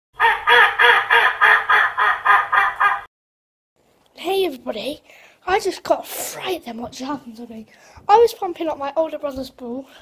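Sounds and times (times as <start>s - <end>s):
duck quacks: 0.2s - 3.1s.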